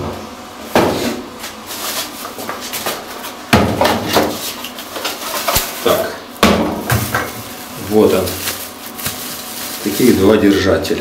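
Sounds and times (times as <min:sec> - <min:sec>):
knocks on cardboard box: 0:03.5 - 0:04.4
bubble-wrap rustling and crinkling: 0:06.8 - 0:10.7.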